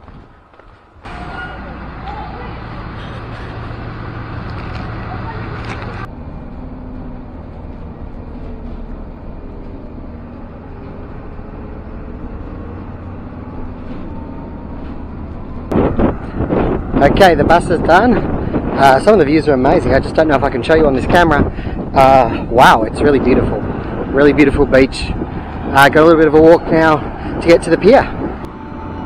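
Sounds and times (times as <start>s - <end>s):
bus engine droning: 0.0s - 29.0s
road noise: 0.0s - 29.0s
rising and falling whines: 23.1s - 29.0s.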